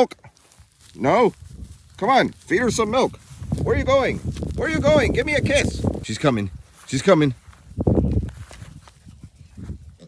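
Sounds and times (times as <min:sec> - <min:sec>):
hooves thudding on grass: 0:00.0 - 0:10.0.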